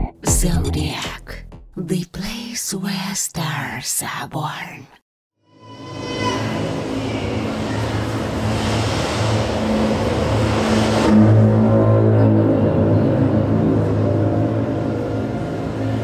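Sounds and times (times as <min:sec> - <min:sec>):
low sustained drone tones: 0:05.4 - 0:16.0
hissing swell: 0:05.5 - 0:12.3.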